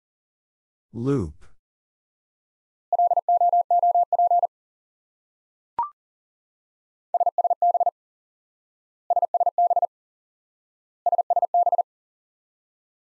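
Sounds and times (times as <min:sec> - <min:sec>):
morse code beeps: 0:03.0 - 0:04.5.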